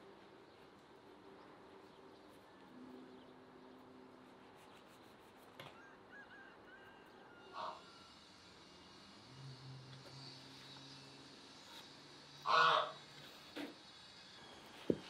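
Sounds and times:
goose honking: 12.4 - 13.0.

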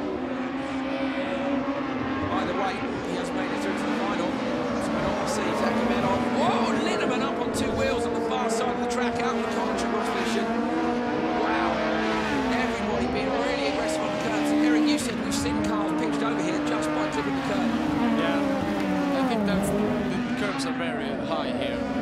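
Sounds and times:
racing car engines at full throttle: 0.0 - 22.0.

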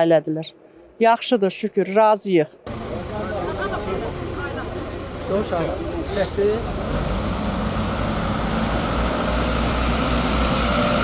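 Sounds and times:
vehicles driving past: 2.6 - 11.0
truck rumble passing close: 2.7 - 11.0.

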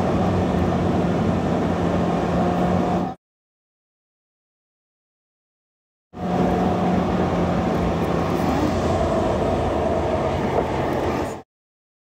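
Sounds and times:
car engine and tyre noise: 0.0 - 3.2, 6.2 - 11.4.

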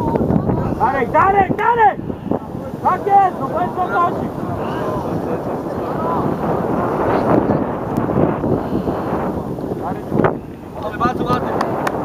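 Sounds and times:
distant voices calling out: 0.0 - 11.2
wind buffeting microphone: 0.0 - 12.0.

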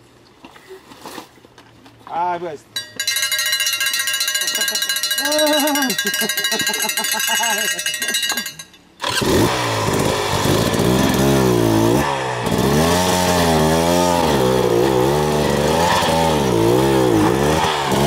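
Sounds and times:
motorcycle engine revving: 9.0 - 18.0.

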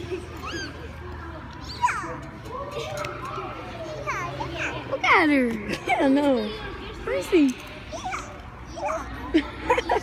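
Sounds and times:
children yelping and squealing: 0.0 - 5.2, 7.8 - 10.0.

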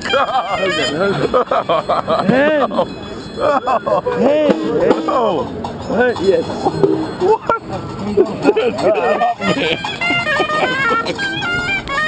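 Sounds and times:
voices: 0.0 - 12.0
snake charmer's wind instrument: 9.0 - 12.0.

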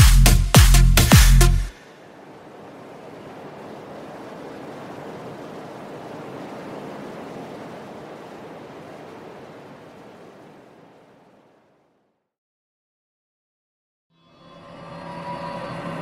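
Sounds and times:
steady surf-like noise: 1.7 - 11.8.

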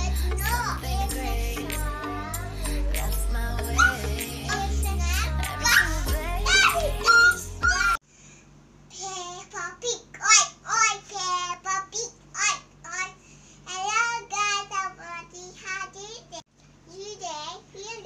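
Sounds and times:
young girl's high voice: 0.0 - 2.4, 3.8 - 8.0, 8.9 - 18.0
intro music: 0.0 - 8.0.

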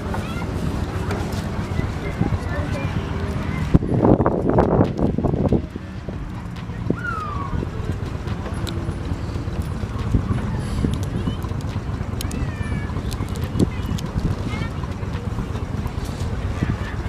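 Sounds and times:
faint voices and chatter: 0.0 - 17.0
wind rumbling on microphone: 0.0 - 17.0
scattered clicks: 2.8 - 16.6.

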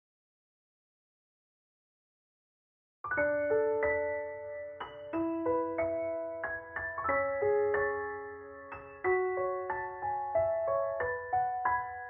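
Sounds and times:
gentle piano notes and chords: 3.1 - 12.0.

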